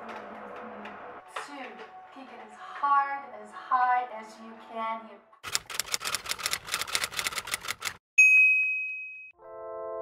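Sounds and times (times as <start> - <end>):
typewriter keys clacking: 5.4 - 8.0.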